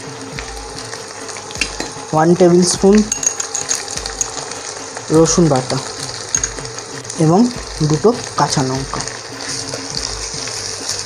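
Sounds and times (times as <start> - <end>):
onions and spices sizzling in oil: 0.0 - 11.0.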